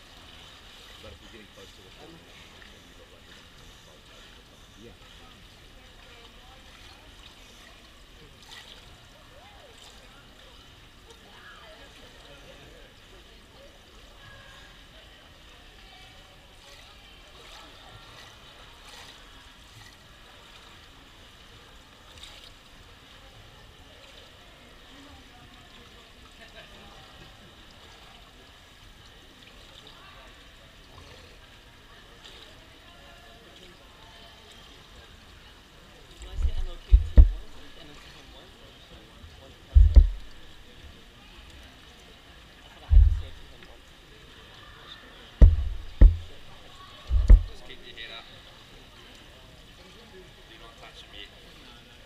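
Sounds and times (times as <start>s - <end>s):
water lapping at pool edge: 0.0s - 51.6s
faint voices murmuring: 0.0s - 52.0s
steady background hum: 36.2s - 38.0s, 39.7s - 40.9s, 42.9s - 43.8s, 45.4s - 48.0s.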